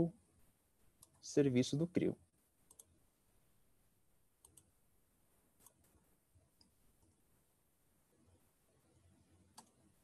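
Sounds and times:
faint computer mouse clicks: 0:02.7 - 0:02.9, 0:04.4 - 0:04.7.

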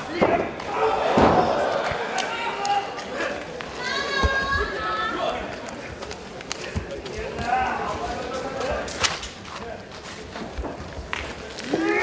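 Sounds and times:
crowd shouting: 0:00.0 - 0:05.3.

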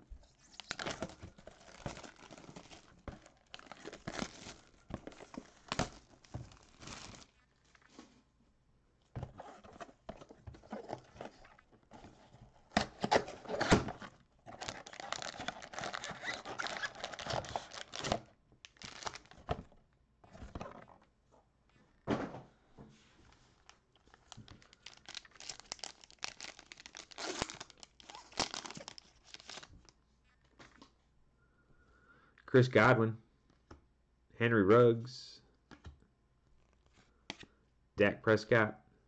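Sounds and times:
card packs rustling and crinkling: 0:00.3 - 0:08.2, 0:09.2 - 0:20.9, 0:23.2 - 0:30.9.

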